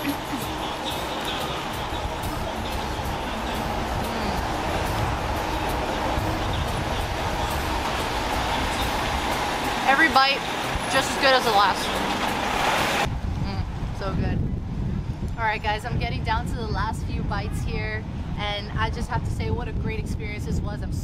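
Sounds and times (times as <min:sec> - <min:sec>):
cars and vans passing: 0:00.0 - 0:16.1.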